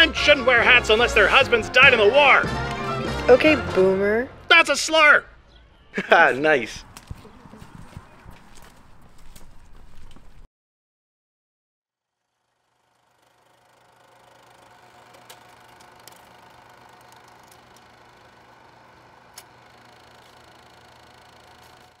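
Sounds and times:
film projector whirring: 12.2s - 22.0s.

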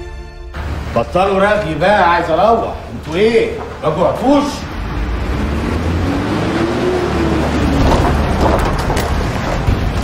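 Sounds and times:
vehicle engine and tyre rumble: 2.8s - 10.0s
faint rising and falling tone: 4.6s - 8.4s.

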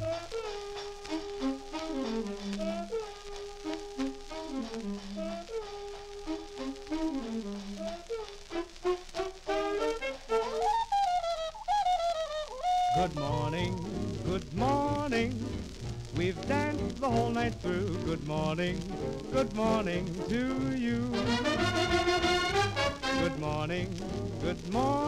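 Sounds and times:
swing dance band playing: 0.0s - 25.0s.

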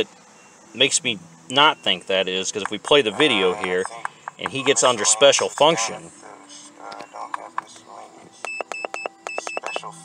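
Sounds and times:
short high keypad beeps: 8.4s - 9.9s.

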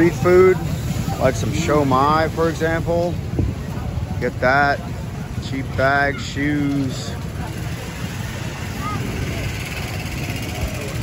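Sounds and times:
faint voices: 0.0s - 11.0s
vehicle engine hum: 0.0s - 11.0s.

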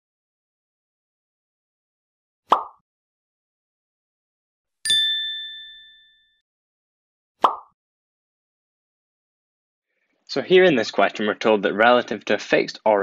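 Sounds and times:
bright ding: 4.9s - 6.4s.

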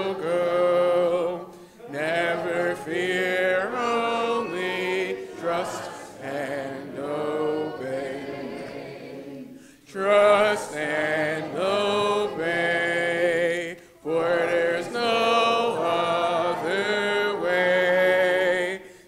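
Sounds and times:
congregation singing a hymn: 0.0s - 19.0s.

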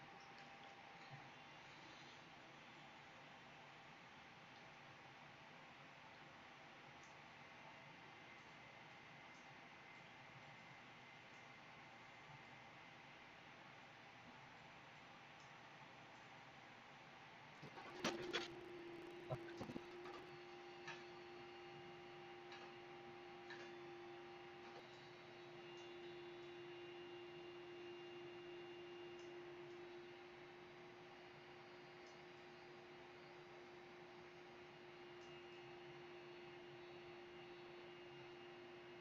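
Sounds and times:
faint steady hum: 0.0s - 39.0s.

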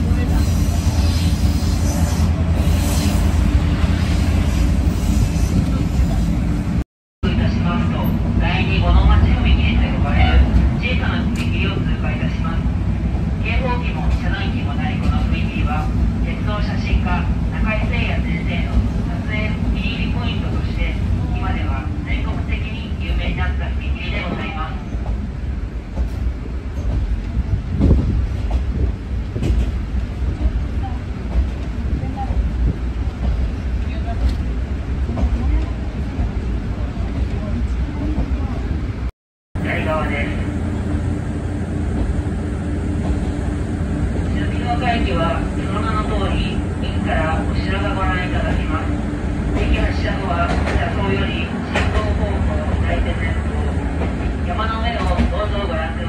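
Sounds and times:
railcar engine drone: 0.0s - 56.0s
indistinct passenger voices: 44.2s - 56.0s.

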